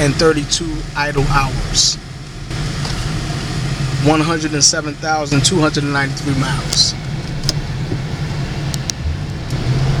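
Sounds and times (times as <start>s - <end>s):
car engine humming: 0.0s - 10.0s.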